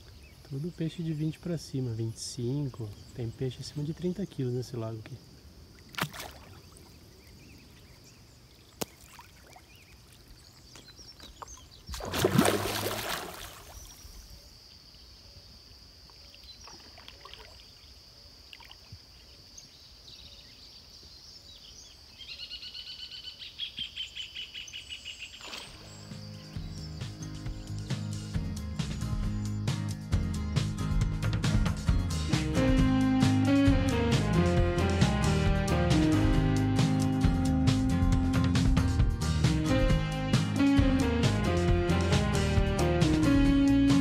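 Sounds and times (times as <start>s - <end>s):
fish splashing at water surface: 5.9s - 6.8s, 8.8s - 10.9s, 11.9s - 14.0s
background music: 25.9s - 44.0s.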